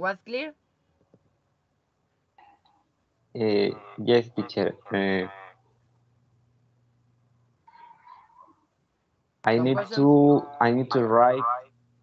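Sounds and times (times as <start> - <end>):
faint high-pitched call: 3.4 - 5.3.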